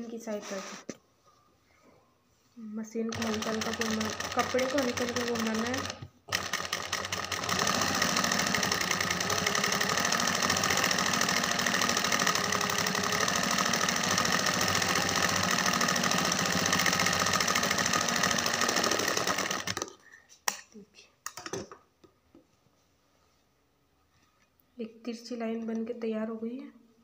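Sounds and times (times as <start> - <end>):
sewing machine stitching: 3.1 - 19.9.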